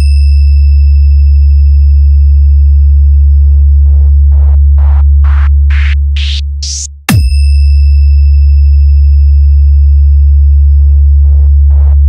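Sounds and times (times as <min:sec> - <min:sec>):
loud synthesized sub-bass tone: 0:00.0 - 0:12.0.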